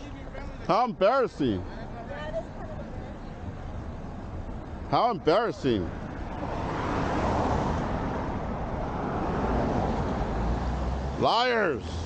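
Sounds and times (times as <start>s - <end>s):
car passing: 1.2s - 12.0s.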